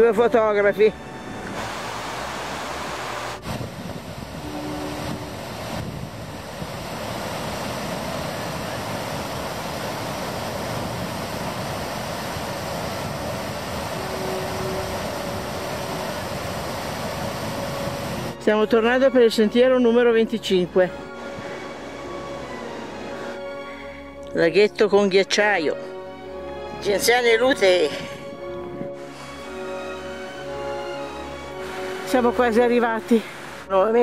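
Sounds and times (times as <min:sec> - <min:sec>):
steady rushing noise: 0:00.0 - 0:23.8, 0:26.8 - 0:34.0.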